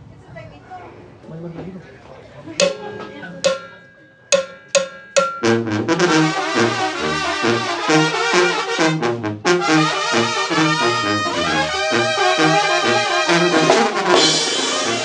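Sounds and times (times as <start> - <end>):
drum and cymbal strikes: 2.6 - 6.4, 12.2 - 15.0
brass band playing with drums: 5.4 - 15.0.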